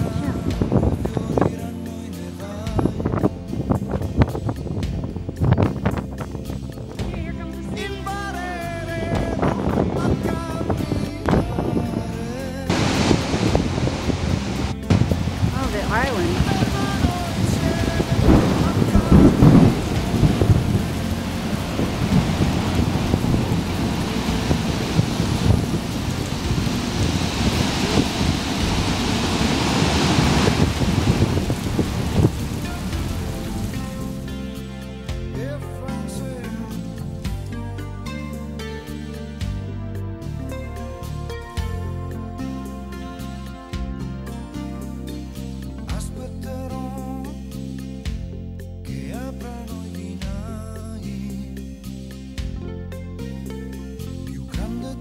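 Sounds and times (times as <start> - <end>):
deep rumbles: 0.0 - 38.4
storm rushing roar: 12.7 - 34.7.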